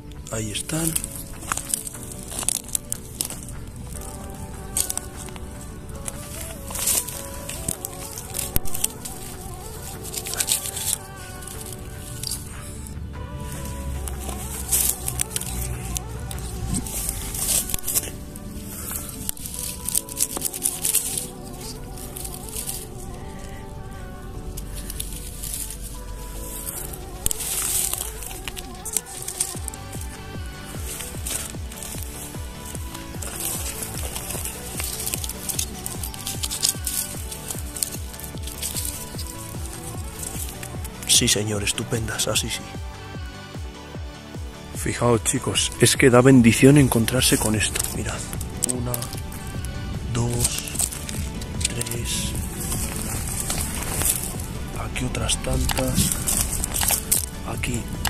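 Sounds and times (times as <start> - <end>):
background music held tones: 0.0 - 58.0
rustling and scraping in dry grass: 0.0 - 58.0.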